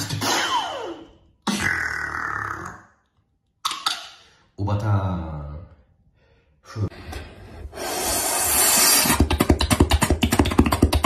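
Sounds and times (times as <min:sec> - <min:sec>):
beatboxing mouth effects: 0:07.8 - 0:11.0.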